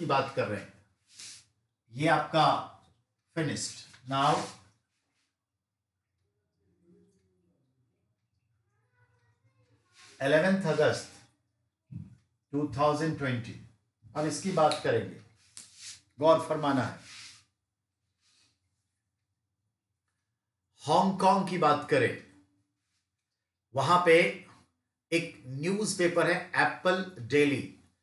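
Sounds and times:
man speaking: 0.0 - 0.7, 1.9 - 4.6, 10.2 - 11.2, 12.5 - 15.2, 16.2 - 17.0.

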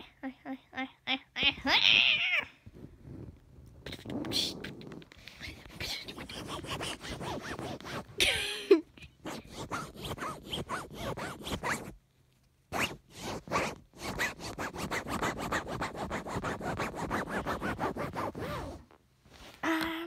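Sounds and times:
fingers scratching on microphone: 2.7 - 8.2, 9.1 - 12.0, 12.7 - 19.0.

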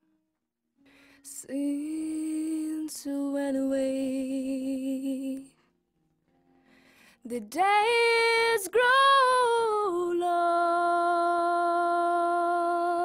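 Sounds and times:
woman singing sustained notes: 1.3 - 5.5, 7.3 - 13.0
soft intake of breath: 6.6 - 7.2.

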